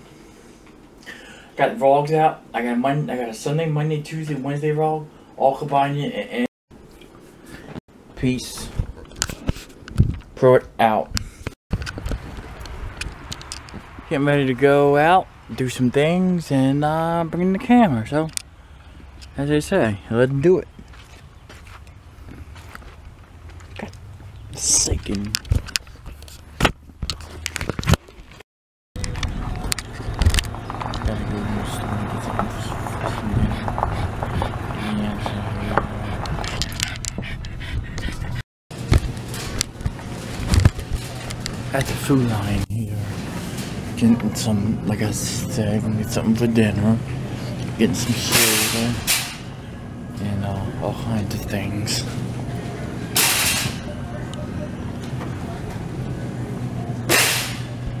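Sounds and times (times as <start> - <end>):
car engine humming: 29.0 - 37.0
steady low hum: 29.0 - 58.0.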